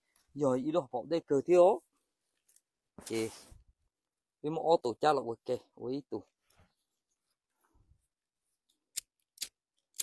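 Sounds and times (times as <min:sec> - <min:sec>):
person speaking: 0:00.1 - 0:03.7.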